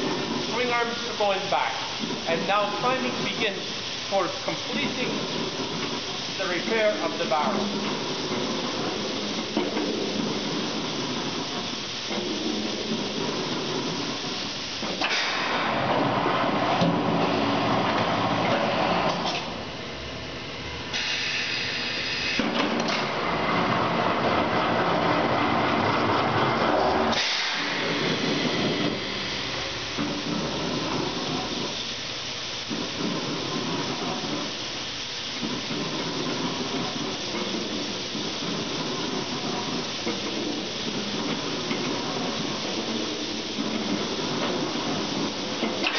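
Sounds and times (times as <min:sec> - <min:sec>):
compressed air hissing: 0:00.0 - 0:15.8, 0:20.9 - 0:23.2, 0:27.0 - 0:45.9
machine running: 0:00.0 - 0:45.9.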